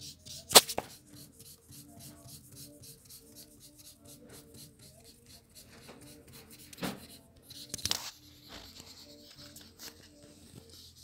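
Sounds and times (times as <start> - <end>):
highlighter scribbling on paper: 0.0 - 11.0.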